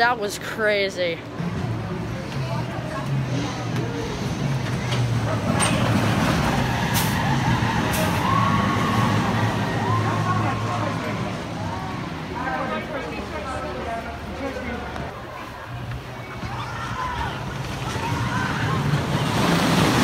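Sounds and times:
voices: 0.0s - 20.0s
roller coaster rumbling on wooden track: 1.4s - 11.5s, 15.7s - 20.0s.

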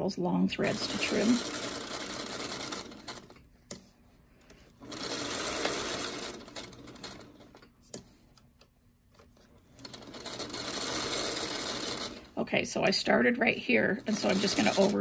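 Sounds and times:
sewing machine stitching: 0.5s - 3.5s, 4.8s - 7.7s, 9.4s - 12.4s, 13.5s - 15.0s.

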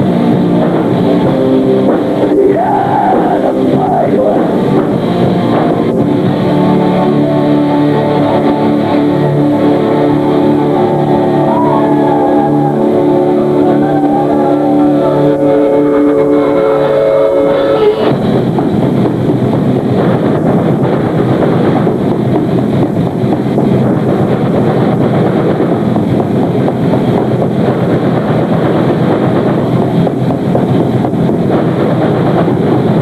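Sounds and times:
metal band playing: 0.0s - 33.0s.

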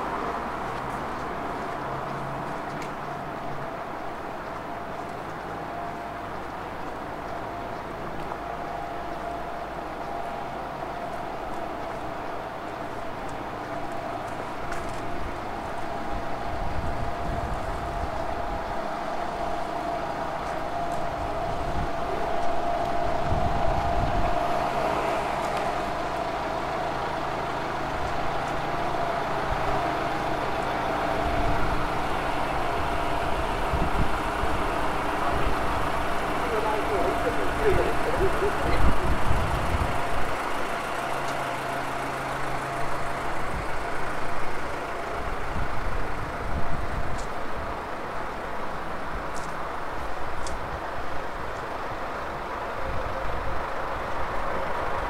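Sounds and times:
vehicle engines idling: 0.0s - 55.0s
people's voices: 35.0s - 40.6s.

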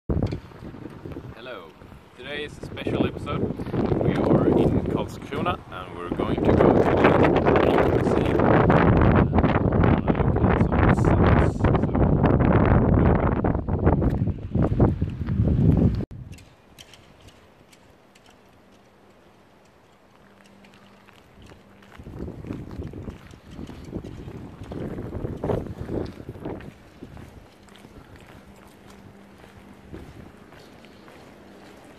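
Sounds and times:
footsteps on cobblestones: 0.1s - 9.1s, 13.7s - 31.9s
wind buffeting microphone: 0.1s - 17.6s, 20.2s - 31.9s
man speaking: 1.4s - 8.4s.

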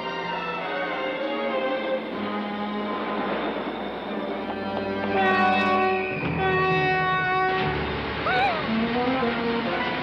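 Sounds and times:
mechanical rumble and hiss: 0.8s - 10.0s.

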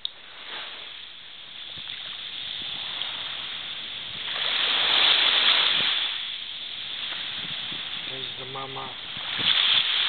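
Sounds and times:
surf washing on sandy shore: 0.0s - 10.0s.

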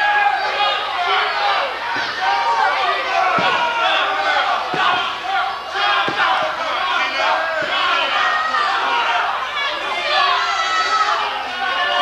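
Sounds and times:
crowd shouting and yelling: 0.0s - 12.0s.

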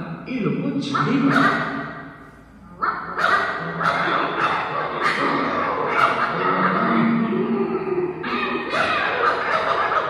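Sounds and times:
cartoon dogs barking: 0.9s - 2.0s, 2.8s - 10.0s.

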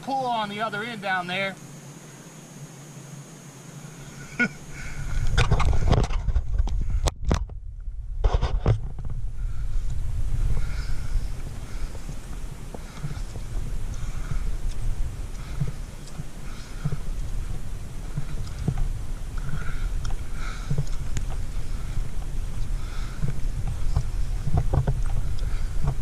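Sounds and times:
footsteps on dirt: 4.1s - 7.6s, 8.2s - 26.0s
low microphone rumble: 4.1s - 26.0s.

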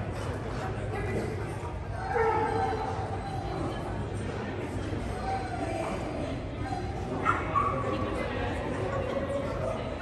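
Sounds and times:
voices in echoing hall: 0.0s - 10.0s.

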